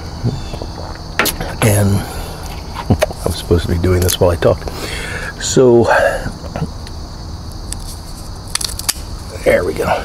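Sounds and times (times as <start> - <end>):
crackling clicks: 3.9 - 4.2, 6.6 - 9.1.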